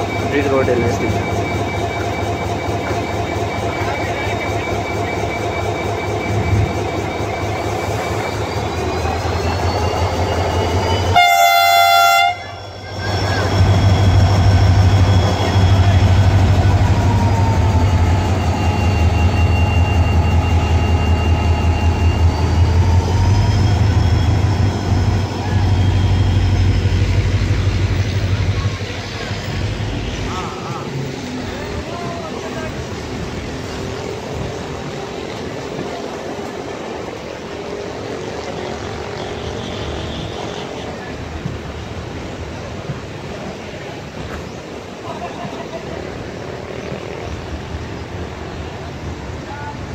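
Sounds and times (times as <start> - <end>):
diesel locomotive engine throbbing: 0.0 - 49.9
passenger coaches rolling by: 0.0 - 49.9
train horn blast: 11.0 - 12.8, 38.7 - 41.1.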